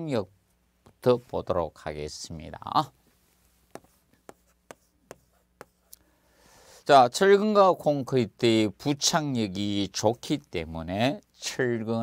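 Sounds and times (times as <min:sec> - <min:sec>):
chalk tapping and scraping on chalkboard: 0:03.4 - 0:06.0.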